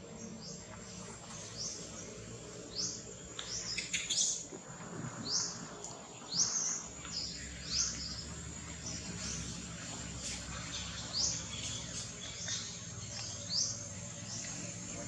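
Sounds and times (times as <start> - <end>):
bird chirping: 0.0 - 15.0.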